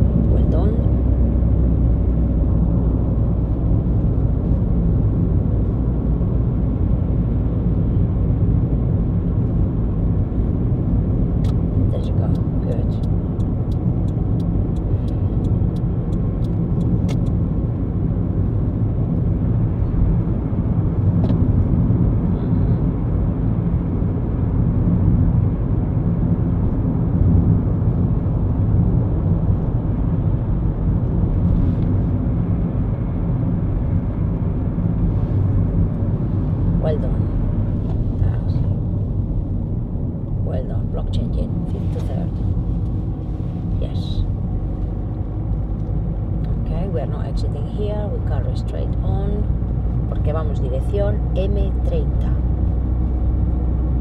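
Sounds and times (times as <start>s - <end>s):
car tyres and engine rumble: 0.0s - 54.0s.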